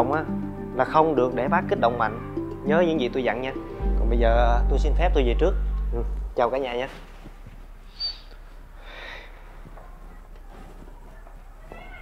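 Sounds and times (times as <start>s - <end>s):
cat meowing: 1.8s - 2.4s, 11.6s - 12.0s
low hum: 3.8s - 6.6s.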